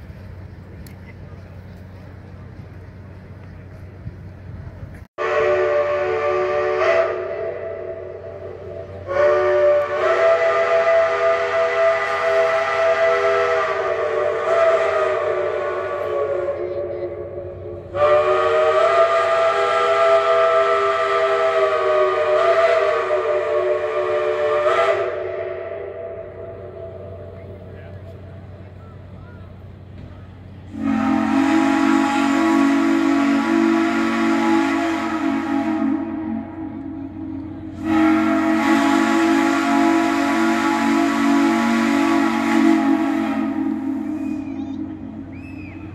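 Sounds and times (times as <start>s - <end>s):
steam locomotive chime whistle: 5.2s - 27.7s, 30.7s - 45.9s
lower chord whistle: 30.7s - 45.9s.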